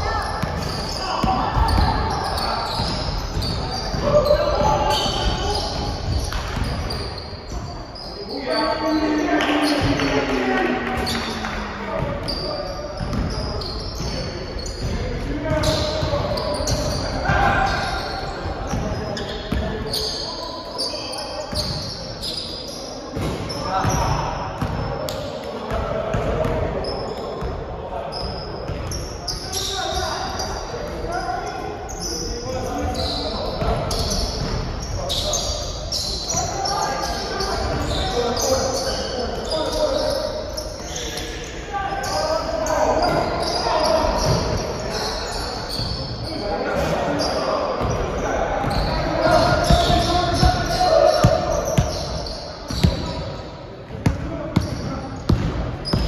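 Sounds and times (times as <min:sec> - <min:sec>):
players calling out: 0:00.0 - 0:27.2, 0:28.1 - 0:53.4
sneakers squeaking: 0:00.0 - 0:56.0
basketball bouncing: 0:54.0 - 0:56.0.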